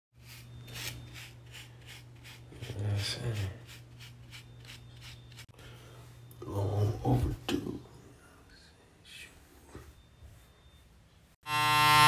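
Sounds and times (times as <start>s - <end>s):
electric hair clippers buzzing: 11.4s - 12.0s.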